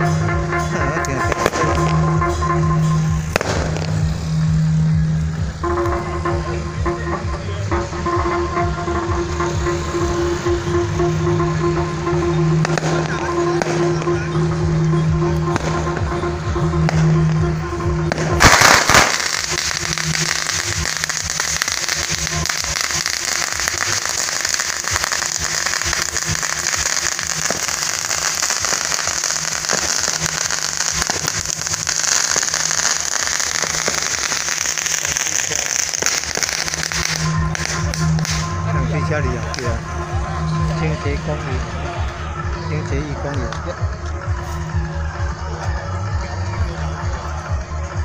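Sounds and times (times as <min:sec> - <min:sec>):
firecrackers crackling: 0:00.0 - 0:44.5.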